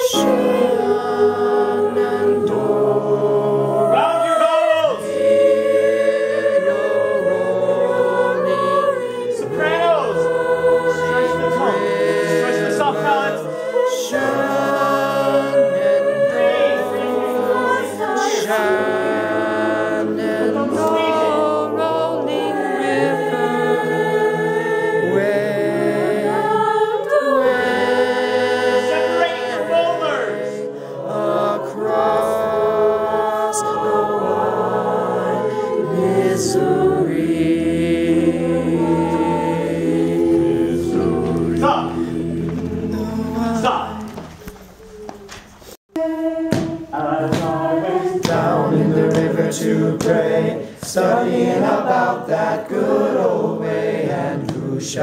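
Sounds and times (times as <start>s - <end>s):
choir singing unaccompanied: 0.0s - 45.0s, 45.9s - 55.0s.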